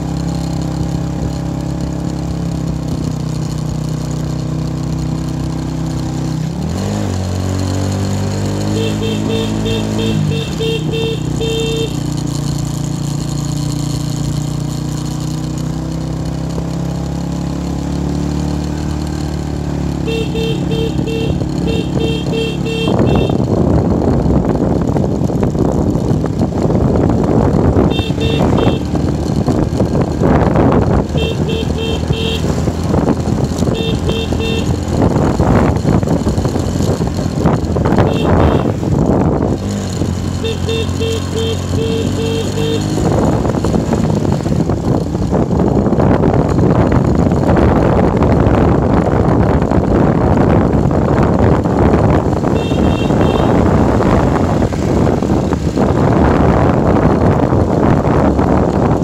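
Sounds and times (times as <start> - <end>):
motorbike engine: 0.0 - 59.0
wind and road noise: 0.0 - 59.0.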